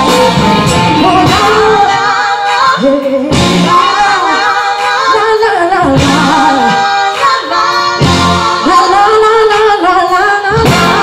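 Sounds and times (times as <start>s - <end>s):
backing music: 0.0s - 11.0s
woman singing into microphone: 0.0s - 11.0s.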